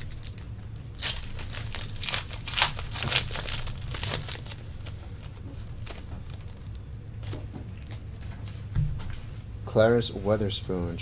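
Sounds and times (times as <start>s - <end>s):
wrapper tearing and crinkling: 0.0s - 8.0s.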